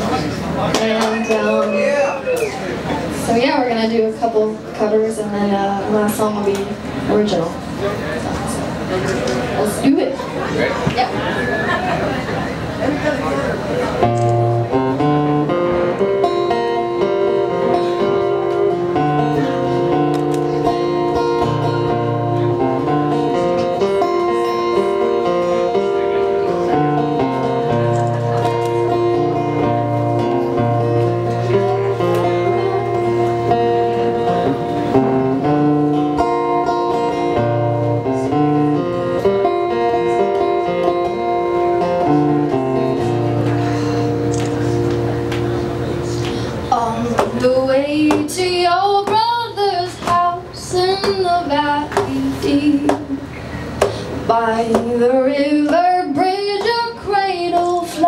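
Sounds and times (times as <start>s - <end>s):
acoustic guitar playing: 0.0s - 7.4s, 8.5s - 58.0s.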